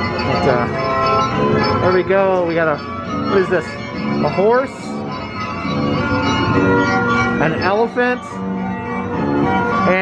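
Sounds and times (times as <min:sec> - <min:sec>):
carousel ride music: 0:00.0 - 0:10.0.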